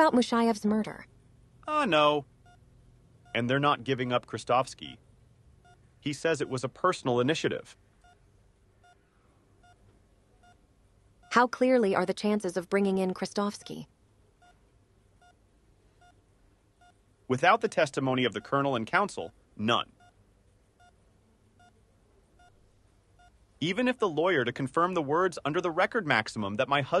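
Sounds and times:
patient monitor beeps: 0:01.7 - 0:05.0, 0:05.6 - 0:06.8, 0:07.6 - 0:12.2, 0:13.1 - 0:14.6, 0:15.2 - 0:18.8, 0:19.7 - 0:23.4.

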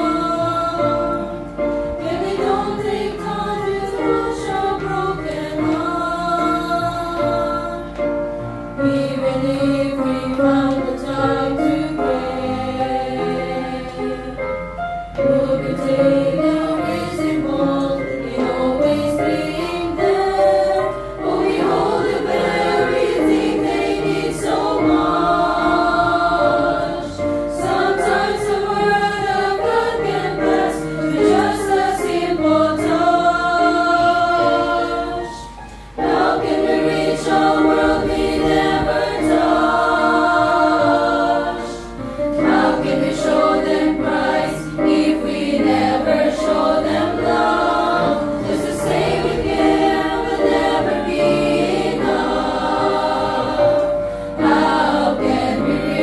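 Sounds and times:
recorded accompaniment track: 0:00.0 - 0:56.0
women's choir singing: 0:00.0 - 0:56.0.

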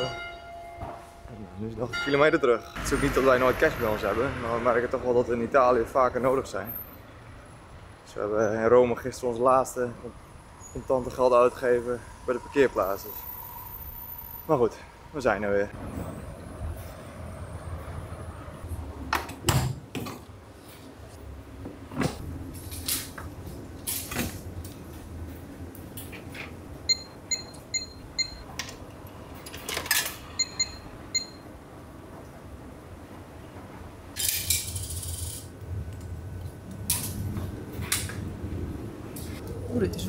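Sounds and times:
short electronic beeps: 0:30.4 - 0:31.4.

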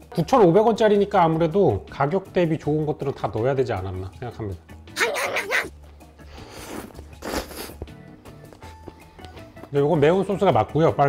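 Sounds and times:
background music: 0:00.0 - 0:11.0
eating and breathing in: 0:06.0 - 0:09.6.

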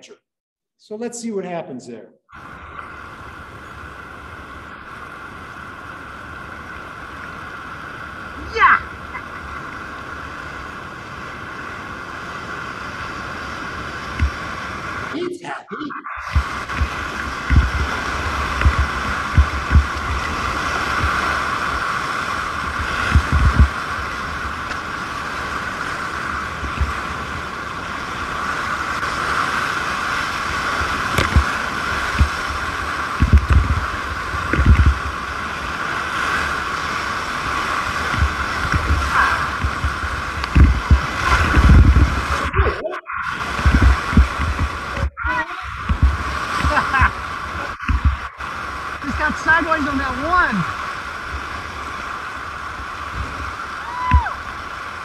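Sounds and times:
river rapid rushing: 0:02.4 - 0:55.0
water slapping against raft: 0:13.4 - 0:15.3, 0:16.0 - 0:52.2, 0:52.8 - 0:54.6.

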